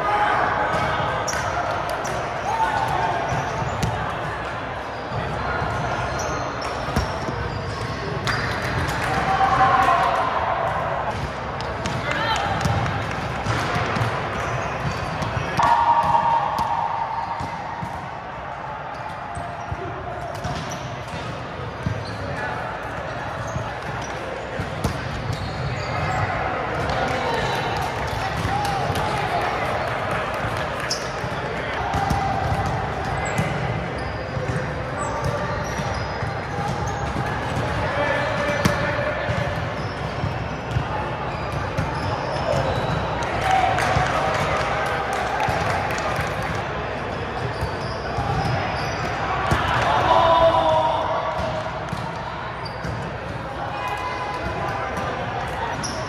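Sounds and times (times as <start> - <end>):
players' voices and chatter: 0.0 - 56.0.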